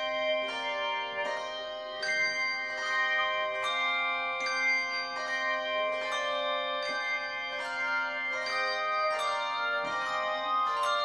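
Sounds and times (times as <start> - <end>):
handbell choir playing: 0.0 - 11.0.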